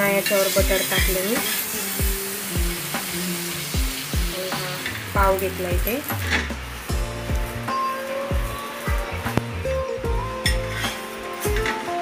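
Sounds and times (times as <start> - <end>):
butter sizzling on hot pan: 0.0 - 12.0
background music with a beat: 0.6 - 12.0.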